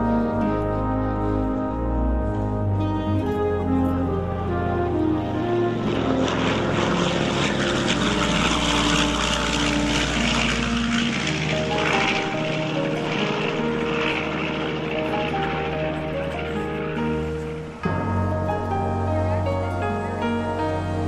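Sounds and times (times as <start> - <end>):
background music: 0.0 - 21.0
propeller plane passing low: 0.0 - 21.0.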